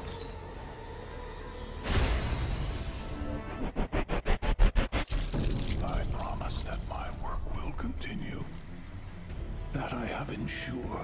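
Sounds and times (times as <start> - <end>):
rapid stuttering soundtrack pulse: 2.8 - 5.4.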